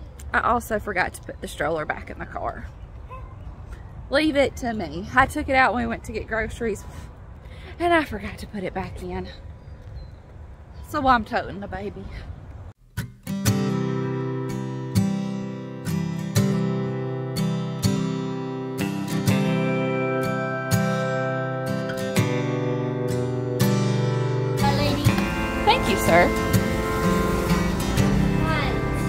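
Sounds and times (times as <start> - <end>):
outdoor ambience: 0.0 - 29.0
strummed acoustic guitar: 12.9 - 29.0
voices: 24.6 - 29.0.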